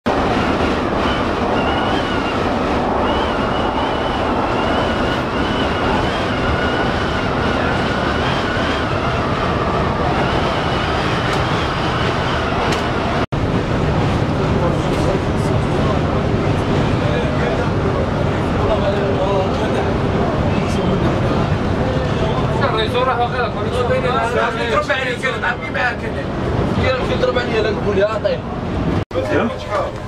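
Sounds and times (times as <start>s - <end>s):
coach engine and road rumble: 0.0s - 30.0s.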